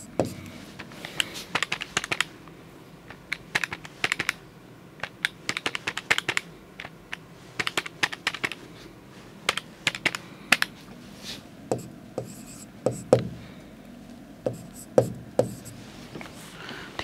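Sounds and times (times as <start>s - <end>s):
calculator keys clicking: 1.2s - 2.3s, 3.2s - 4.4s, 5.0s - 8.6s, 9.5s - 10.7s.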